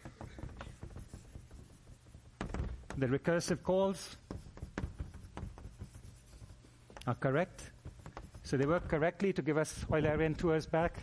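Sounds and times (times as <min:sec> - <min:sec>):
chalk writing on blackboard: 0:00.0 - 0:11.0.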